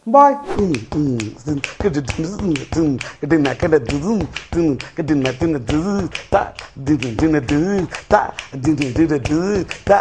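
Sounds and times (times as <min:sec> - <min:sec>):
gliding voice-like sounds: 0:00.0 - 0:01.2
man speaking: 0:00.0 - 0:01.2.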